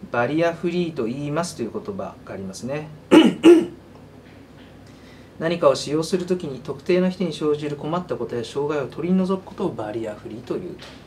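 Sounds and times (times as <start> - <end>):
man clearing his throat: 3.1 - 3.8.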